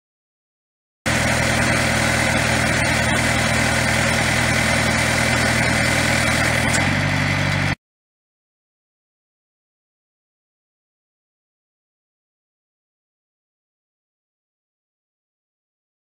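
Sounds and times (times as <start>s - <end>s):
diesel engine running: 1.1s - 7.8s.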